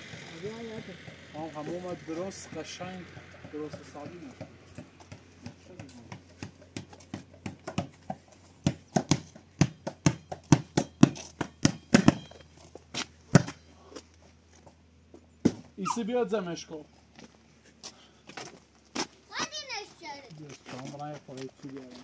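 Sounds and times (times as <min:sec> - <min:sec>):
footsteps on dirt path: 0:01.1 - 0:15.8, 0:17.0 - 0:22.0.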